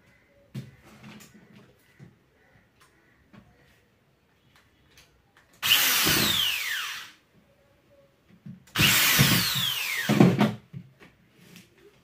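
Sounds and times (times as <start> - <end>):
electric drill whining: 5.6 - 7.2, 8.8 - 10.3.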